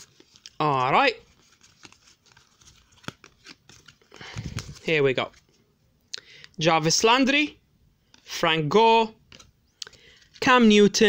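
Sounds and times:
trading cards shuffled: 0.0s - 5.6s.

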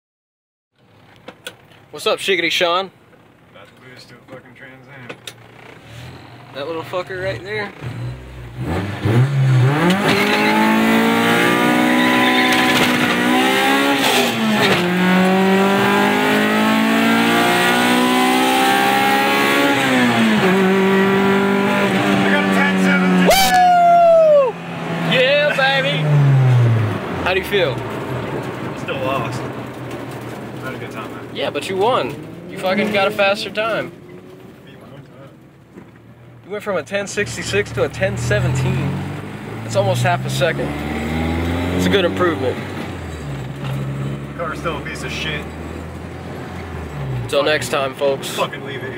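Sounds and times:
car engine revving at full throttle: 7.3s - 35.9s, 36.9s - 48.9s.

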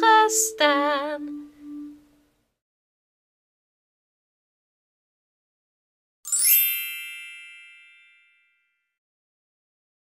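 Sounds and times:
bright chime ding: 6.3s - 8.8s.

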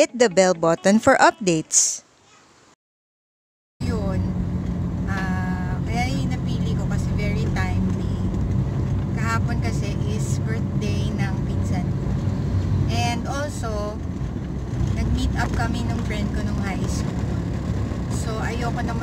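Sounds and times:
woman talking: 0.0s - 2.0s, 3.8s - 4.3s, 5.1s - 8.3s, 9.2s - 11.9s, 12.9s - 14.0s, 15.0s - 17.0s, 18.2s - 19.0s.

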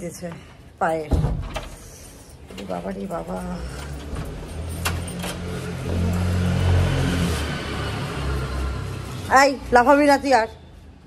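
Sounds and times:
vehicle engine rumble: 1.6s - 10.1s.

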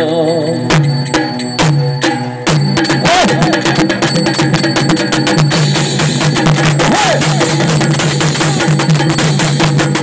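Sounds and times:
metallic clanging percussion: 0.0s - 10.0s
fast dense drumming: 0.7s - 10.0s.

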